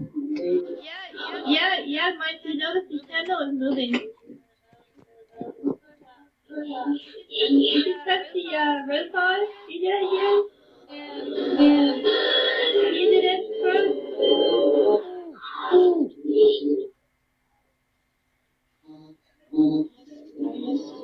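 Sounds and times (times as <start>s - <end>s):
unintelligible voice-like sounds: 0.0s - 1.9s, 3.7s - 16.9s, 18.8s - 21.0s.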